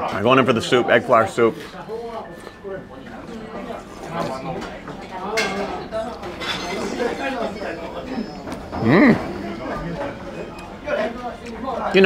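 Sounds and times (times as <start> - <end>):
diners chattering: 0.0 - 12.0
television: 0.0 - 12.0
dishes clinking: 4.1 - 10.8.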